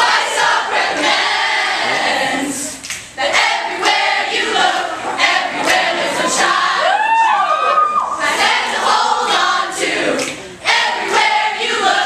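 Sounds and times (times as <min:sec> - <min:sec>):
large group singing: 0:00.0 - 0:07.2, 0:08.1 - 0:12.0.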